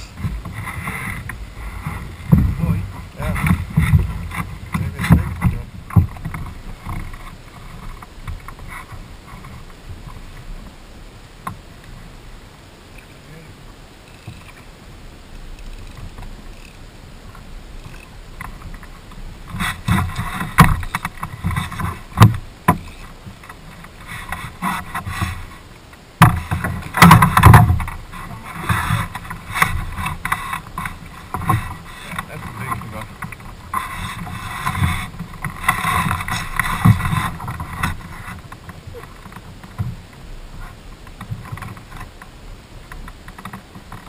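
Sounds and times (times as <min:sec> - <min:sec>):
knocks and thumps on boat deck: 0:00.0 - 0:09.6, 0:19.5 - 0:25.6, 0:26.2 - 0:40.0
water splashing: 0:00.0 - 0:44.0.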